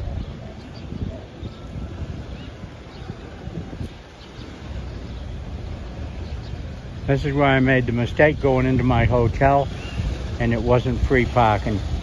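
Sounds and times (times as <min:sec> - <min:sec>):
slow car traffic hum: 0:00.0 - 0:12.0
wind buffeting microphone: 0:00.0 - 0:12.0.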